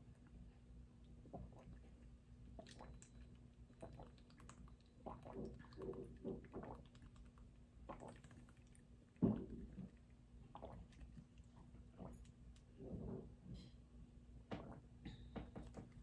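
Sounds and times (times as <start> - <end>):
person gulping and swallowing: 1.2 - 13.2.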